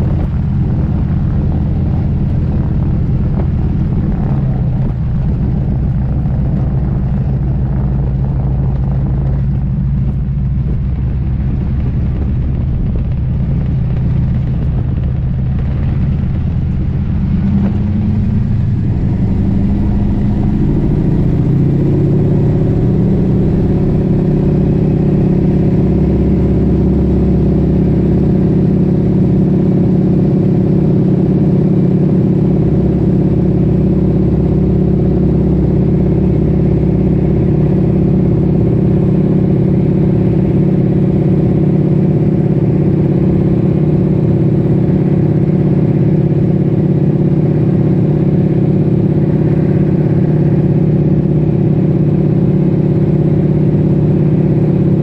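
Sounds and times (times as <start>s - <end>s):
radial aircraft engine running: 0.0s - 55.0s.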